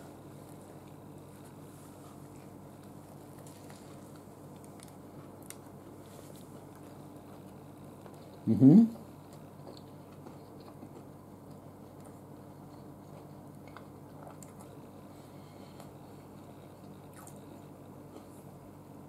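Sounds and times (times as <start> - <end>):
steady low hum: 0.0 - 19.0
chewing mouth clicks: 17.1 - 17.5.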